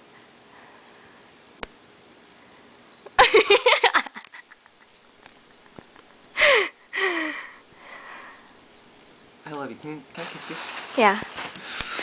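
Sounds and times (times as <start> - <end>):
man laughing: 3.2 - 4.9.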